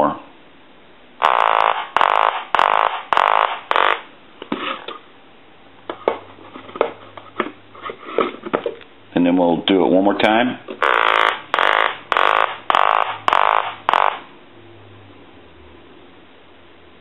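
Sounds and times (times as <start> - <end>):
telephone quacking ringer: 1.2 - 4.0, 10.8 - 14.3.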